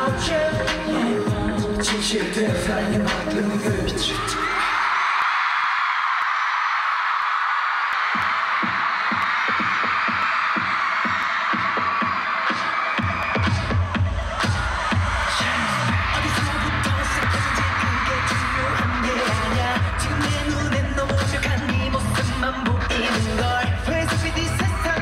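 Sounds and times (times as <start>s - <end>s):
pop music over sound system: 0.0s - 5.6s, 6.2s - 25.0s
crowd screaming: 3.9s - 25.0s.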